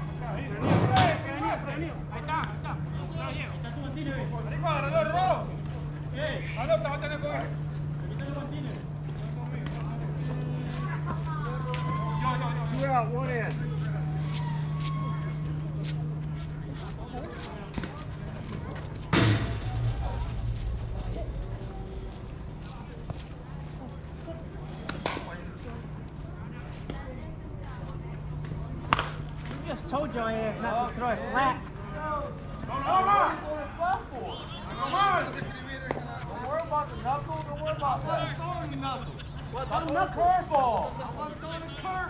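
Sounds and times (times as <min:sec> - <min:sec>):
scattered voices: 0:00.0 - 0:42.0
low hum: 0:11.6 - 0:26.2.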